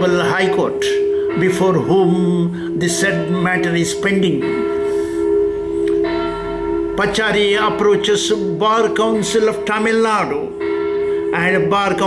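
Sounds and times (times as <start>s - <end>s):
bell-like drone music: 0.0s - 12.0s.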